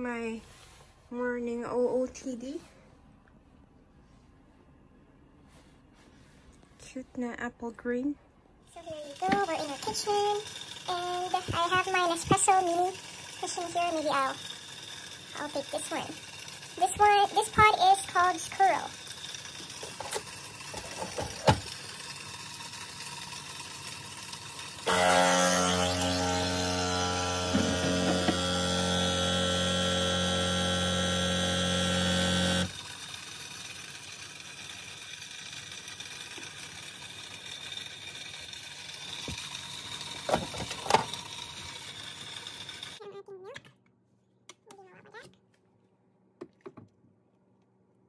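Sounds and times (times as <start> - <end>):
coffee machine pump humming: 8.7 - 43.0.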